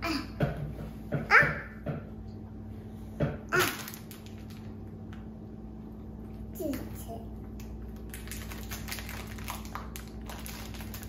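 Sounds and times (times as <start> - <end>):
toddler vocal sound: 1.2 - 1.8.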